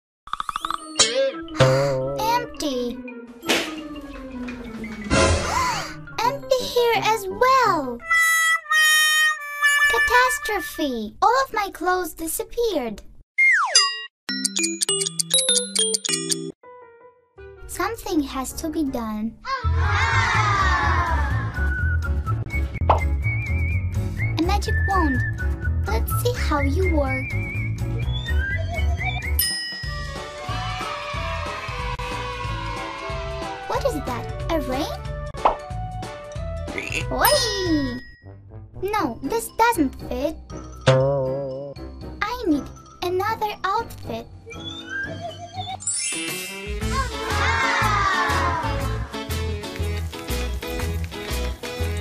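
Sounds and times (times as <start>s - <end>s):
children's background music: 0.6s - 11.2s, 14.3s - 52.0s
cartoon water drop plop: 40.9s - 41.7s.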